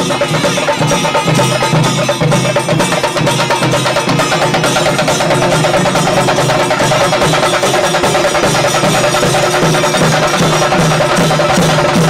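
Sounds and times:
drums beaten with sticks: 0.0 - 12.0.

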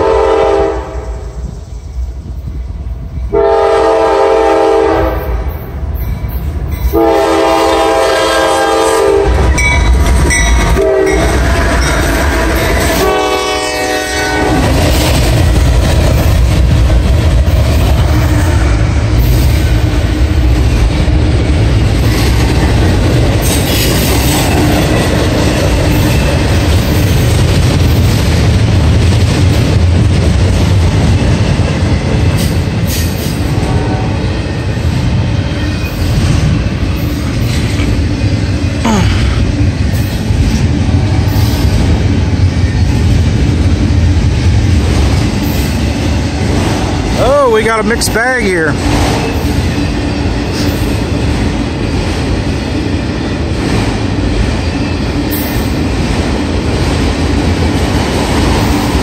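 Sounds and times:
train horn blasts: 0.0 - 1.2, 3.3 - 5.5, 6.9 - 9.6, 10.7 - 14.8
train cars rumbling on rails: 0.0 - 59.0.

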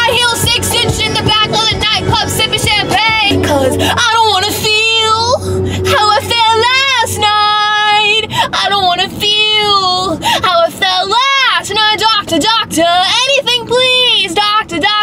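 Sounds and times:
young woman singing: 0.0 - 15.0.

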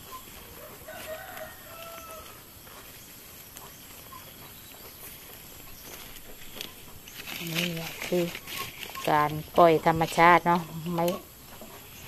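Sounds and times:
faint rooster crowing: 0.4 - 2.8.

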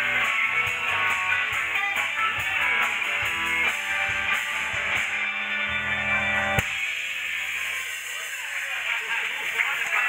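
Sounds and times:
electric guitar chord ringing: 0.0 - 8.9
band final hit: 4.6 - 7.1.

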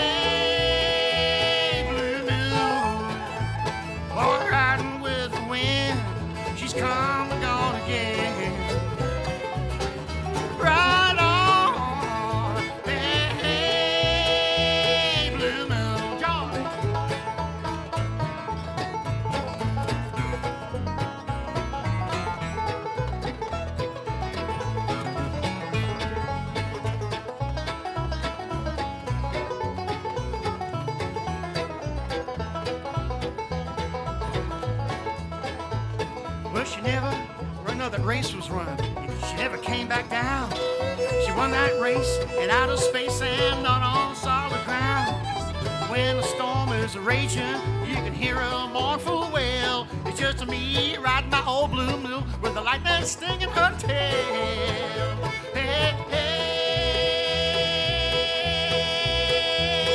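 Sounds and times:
banjo picking fast rolls: 0.0 - 59.9
bluegrass band playing: 0.0 - 59.9.

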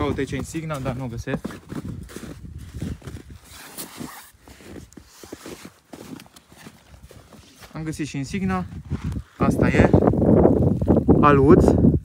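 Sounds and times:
footsteps in snow: 0.0 - 11.1.

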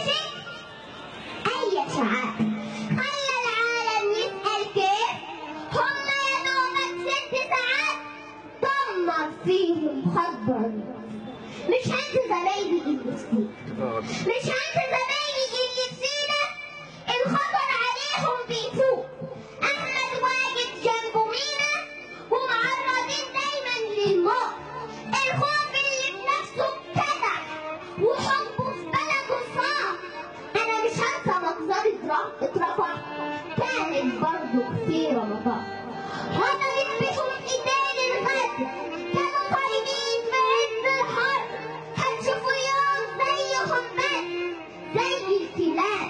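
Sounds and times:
girl singing into a microphone: 1.4 - 10.6, 11.7 - 13.3, 14.2 - 46.0.

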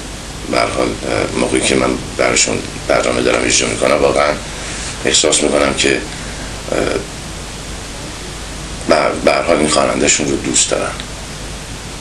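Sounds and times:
steady background hiss: 0.0 - 12.0
man speaking: 0.4 - 7.2, 8.8 - 11.0.

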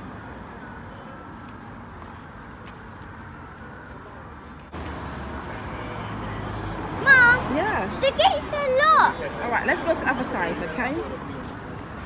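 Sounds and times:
distant road traffic: 0.0 - 12.0.

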